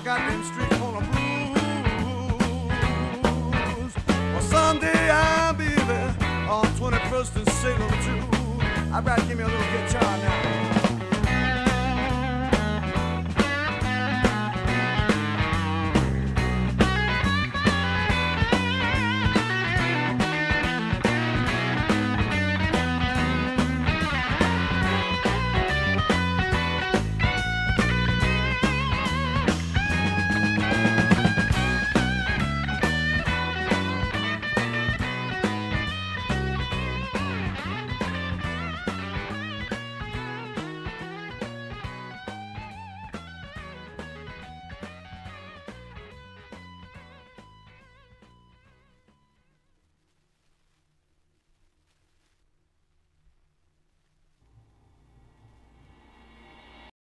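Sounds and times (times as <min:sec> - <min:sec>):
steady drum beat: 0:00.0 - 0:46.6
electric guitar: 0:00.0 - 0:49.5.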